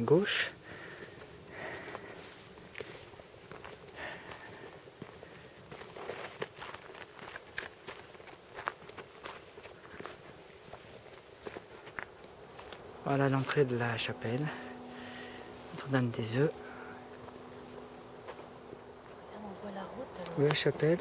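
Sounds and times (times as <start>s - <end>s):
footsteps on gravel: 0.1s - 21.0s.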